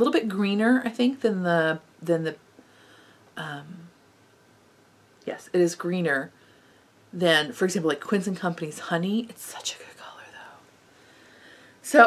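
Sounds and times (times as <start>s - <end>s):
woman speaking softly: 0.0s - 2.4s, 3.4s - 4.0s, 5.2s - 6.3s, 7.2s - 10.6s
room hiss: 0.0s - 12.0s.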